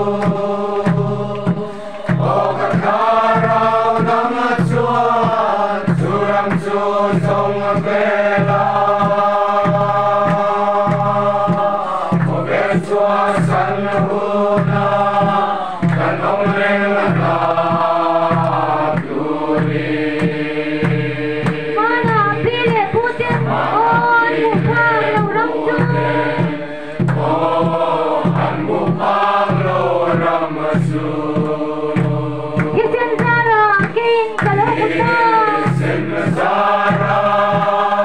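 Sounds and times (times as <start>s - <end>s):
group singing a hymn in unison: 0.0s - 33.6s, 34.2s - 38.0s
steady drum beat: 0.0s - 38.0s.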